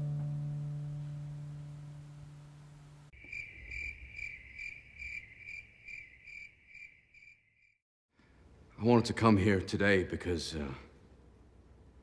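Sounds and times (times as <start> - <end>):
cricket chirping: 3.2 - 7.8.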